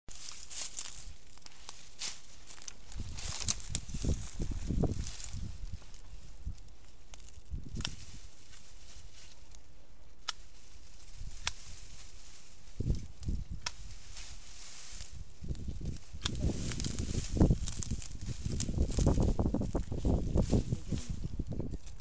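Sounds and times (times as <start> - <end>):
leafy branches rustling: 0.1 - 22.0.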